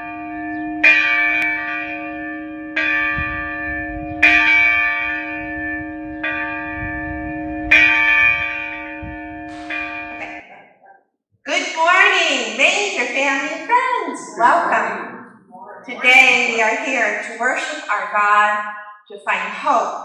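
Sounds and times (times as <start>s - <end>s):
church bell tolling: 0.0s - 10.5s.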